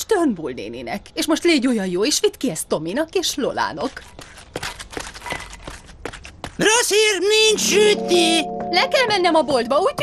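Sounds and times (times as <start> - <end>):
cartoon footsteps running: 3.3 - 10.0.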